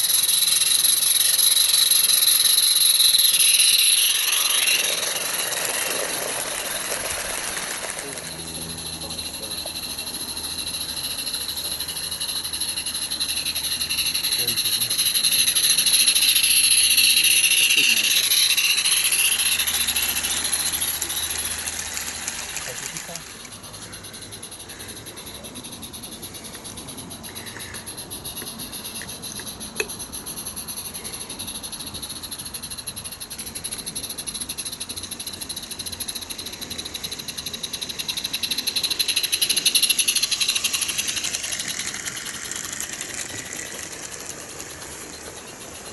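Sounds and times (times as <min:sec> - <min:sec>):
steam locomotive exhaust hissing: 0:00.0 - 0:45.9
wheels rattling on track: 0:00.0 - 0:45.9.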